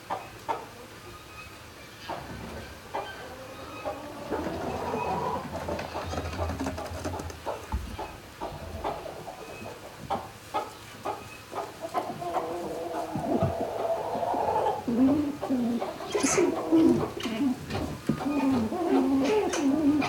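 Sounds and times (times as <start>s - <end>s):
chickens clucking: 0.0s - 20.0s.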